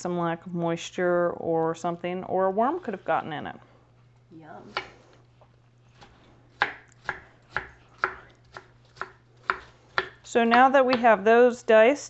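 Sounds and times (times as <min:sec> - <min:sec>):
knife dicing on cutting board: 0:06.0 - 0:11.2.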